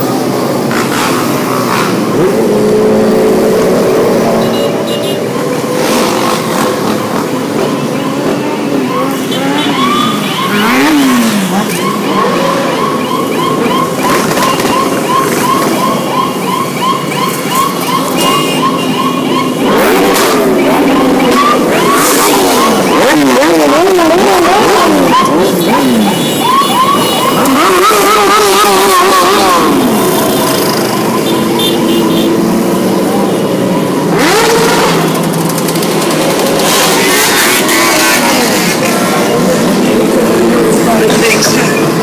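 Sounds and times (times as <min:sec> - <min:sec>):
motorcycle revving loudly: 0:00.0 - 0:16.2, 0:17.4 - 0:42.0
electronic siren-like chirp: 0:07.6 - 0:23.6, 0:24.5 - 0:32.7.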